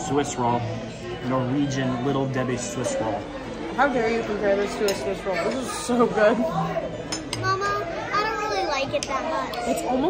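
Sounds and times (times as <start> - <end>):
murmur of chatter: 0.0 - 10.0
young child talking: 7.4 - 9.9.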